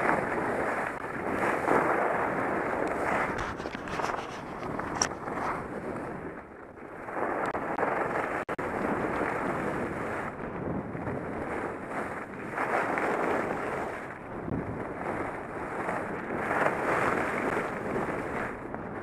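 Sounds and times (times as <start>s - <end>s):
wind rushing over microphone: 0.0s - 19.0s
skis gliding on snow: 0.1s - 6.1s, 16.4s - 18.5s.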